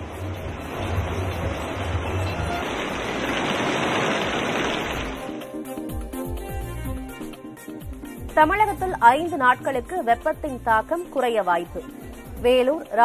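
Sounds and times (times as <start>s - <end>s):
heavy rain hissing: 0.0s - 5.4s
news bulletin music: 0.0s - 13.0s.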